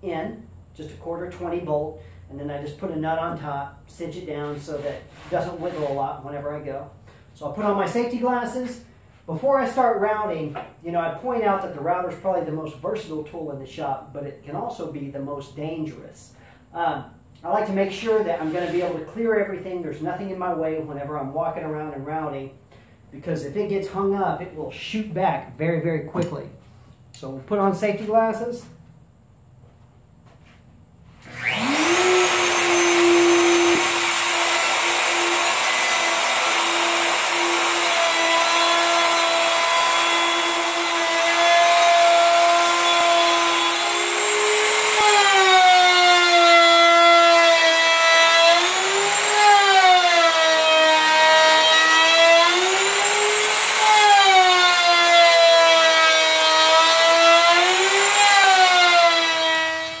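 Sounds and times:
router bit cutting wood: 31.2s - 60.0s
router motor whining: 31.2s - 60.0s.

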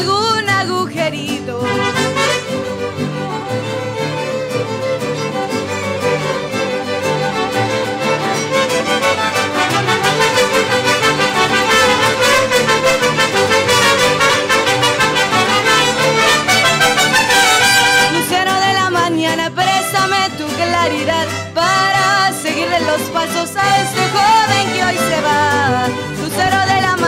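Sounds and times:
person singing: 0.0s - 2.3s, 18.1s - 27.0s
strummed guitars: 0.0s - 27.0s
violins and trumpets: 1.6s - 18.8s, 19.6s - 27.0s.

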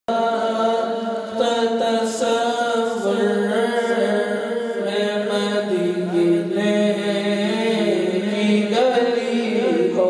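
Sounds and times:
man singing into microphone: 0.1s - 10.0s.

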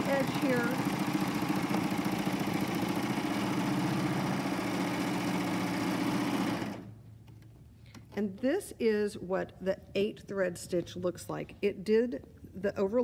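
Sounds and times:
serger sewing machine stitching: 0.0s - 7.0s.

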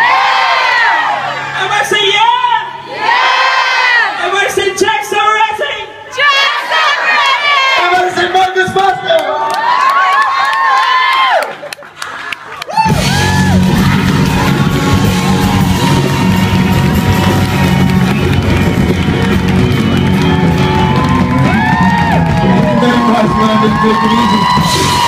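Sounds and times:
audience cheering and whooping: 9.3s - 25.0s
band with heavy bass and drums: 12.8s - 25.0s.

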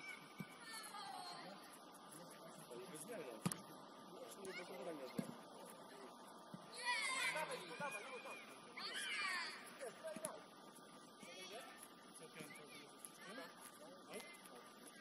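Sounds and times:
ball being kicked thud: 3.4s - 3.7s, 5.1s - 5.4s
players shouting: 6.7s - 9.7s.

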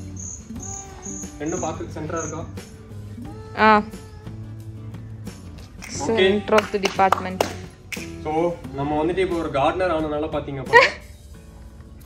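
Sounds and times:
cricket chirping: 0.0s - 3.0s.

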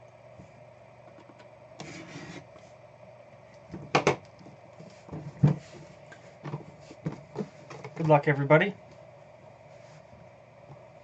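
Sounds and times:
metal briefcase scraping on table: 1.8s - 2.5s.

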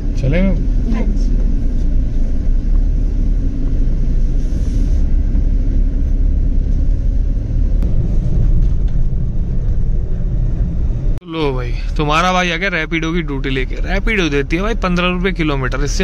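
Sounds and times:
car engine and road noise: 0.0s - 16.0s.

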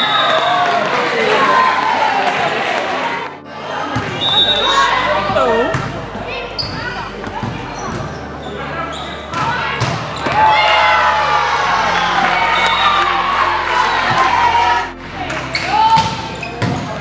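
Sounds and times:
players shouting: 0.0s - 5.8s, 7.4s - 17.0s
volleyball hits: 5.2s - 6.0s, 9.3s - 10.7s.

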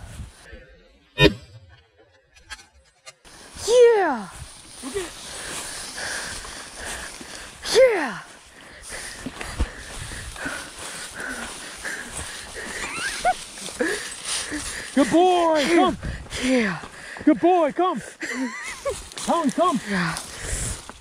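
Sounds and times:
footsteps swishing through dry grass: 3.2s - 7.6s, 8.3s - 15.6s.

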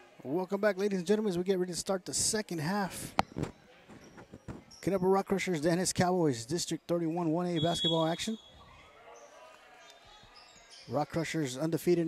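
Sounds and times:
man speaking: 4.8s - 8.4s, 10.9s - 12.0s
gym ambience: 7.0s - 11.4s.

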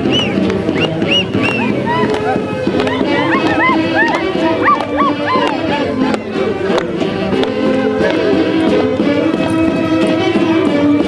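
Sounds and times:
live dance music: 0.0s - 11.0s.

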